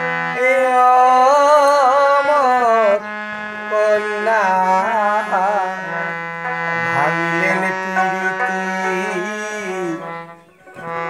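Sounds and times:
held accompaniment note: 0.0 - 11.0
man singing folk song: 0.3 - 10.8
long-necked lute playing: 2.3 - 11.0.

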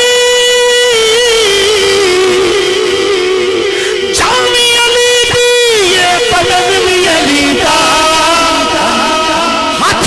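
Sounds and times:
man singing through pa system: 0.0 - 10.0.

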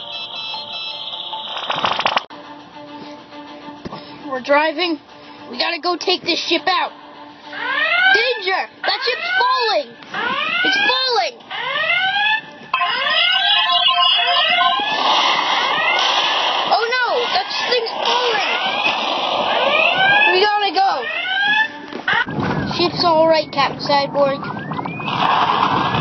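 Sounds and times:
hissing explosion-like noise: 25.0 - 26.0.

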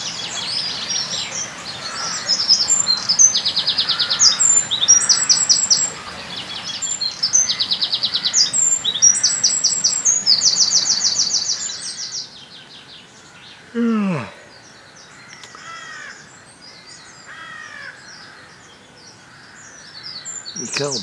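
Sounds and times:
songbird trilling: 0.0 - 12.6, 19.4 - 21.0.

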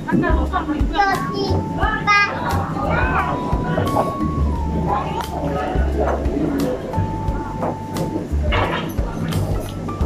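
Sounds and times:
diners chattering: 0.0 - 10.0
music with pulsing bass beat: 0.0 - 10.0
children's voices: 0.8 - 4.2.

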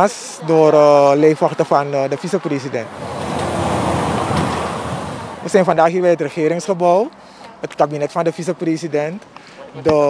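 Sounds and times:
vehicle passing close by: 2.5 - 5.9.

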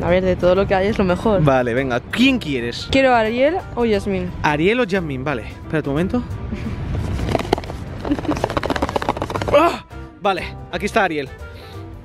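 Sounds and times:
laughter in short pulses: 8.0 - 8.6.

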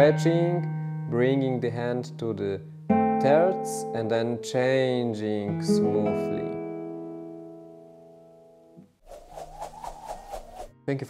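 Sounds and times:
classical guitar chord: 0.0 - 8.3
fast evenly pulsing sound: 9.1 - 10.7.

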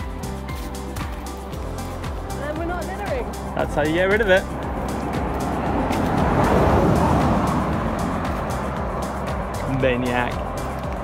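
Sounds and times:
background music: 0.0 - 11.0
car passing: 1.9 - 11.0.

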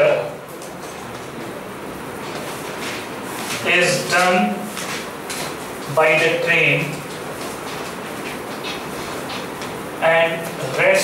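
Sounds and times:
room noise: 0.0 - 11.0.

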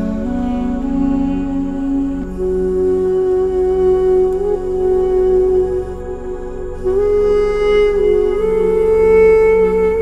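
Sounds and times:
duduk melody: 0.0 - 10.0
low sustained drone: 0.0 - 10.0.

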